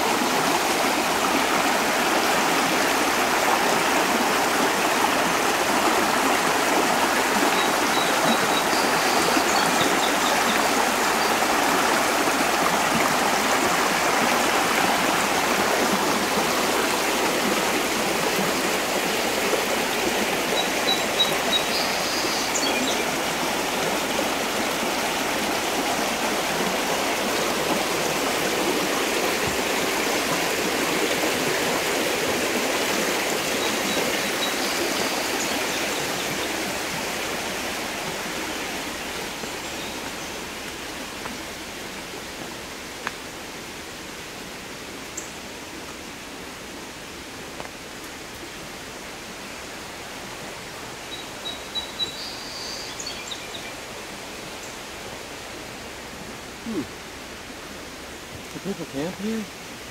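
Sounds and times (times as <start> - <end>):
creek rippling over stones: 0.0 - 59.9.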